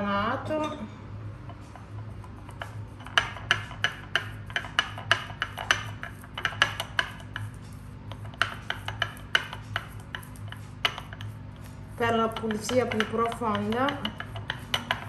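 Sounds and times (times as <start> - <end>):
toothbrush scraping ceramic saucer: 1.5 - 15.0.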